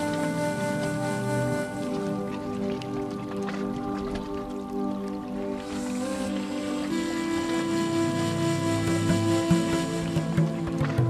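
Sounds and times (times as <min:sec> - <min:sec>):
sustained background music: 0:00.0 - 0:11.0.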